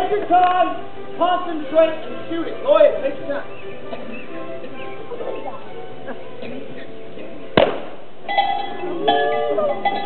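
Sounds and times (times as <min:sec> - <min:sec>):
voices: 0:00.0 - 0:07.6, 0:08.3 - 0:10.0
music: 0:00.0 - 0:10.0
pistol shot with echo: 0:07.6 - 0:08.0.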